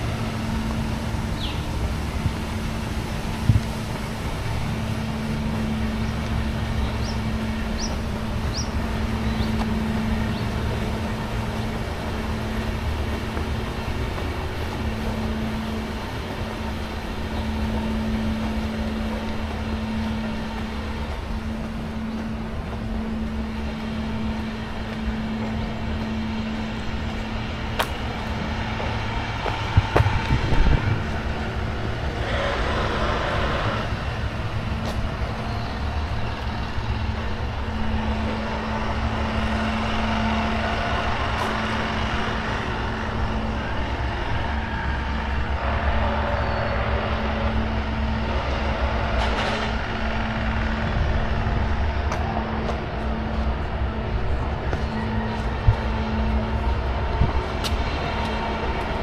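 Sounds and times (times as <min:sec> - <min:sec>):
motor traffic rumble: 0:00.0 - 0:59.0.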